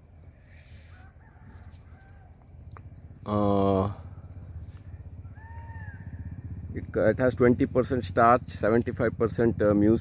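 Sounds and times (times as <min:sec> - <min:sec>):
animal call: 0:04.8 - 0:06.6.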